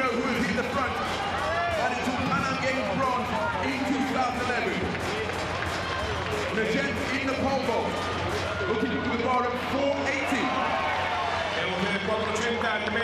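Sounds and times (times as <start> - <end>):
man commentating race: 0.0 - 5.4, 6.3 - 10.8, 11.4 - 13.0
stadium crowd noise: 0.0 - 13.0.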